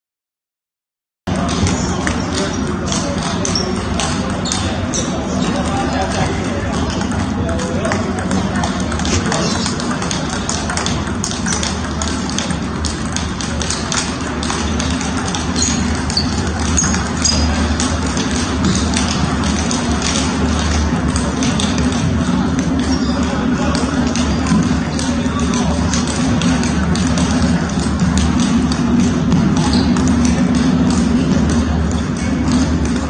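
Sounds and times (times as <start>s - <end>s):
table tennis balls clicking: 1.3s - 33.0s
voices: 1.3s - 33.0s.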